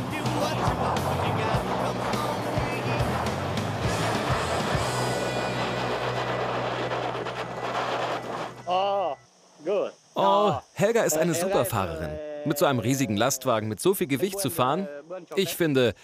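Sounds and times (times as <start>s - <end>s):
truck diesel engine under load: 0.0s - 8.7s.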